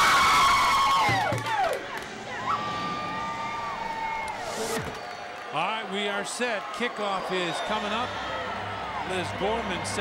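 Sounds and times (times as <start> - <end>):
women cheering and whooping: 0.0 - 4.6.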